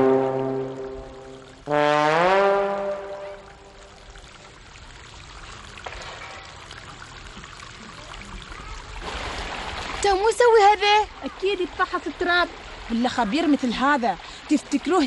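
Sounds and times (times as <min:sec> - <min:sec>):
brass music sting: 0:01.7 - 0:03.5.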